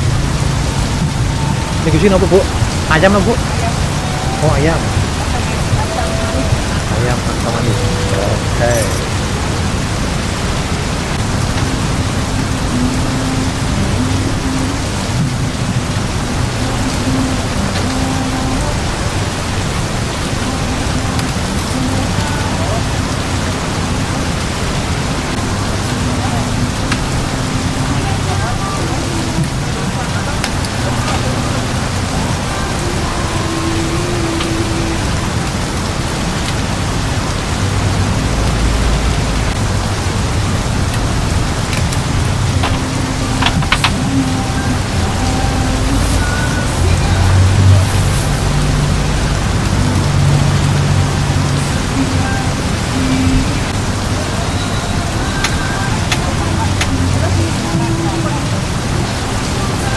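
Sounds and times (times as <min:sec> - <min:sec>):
faint voices: 0:00.0 - 0:59.9
heavy rain on a tarp: 0:00.0 - 0:59.9.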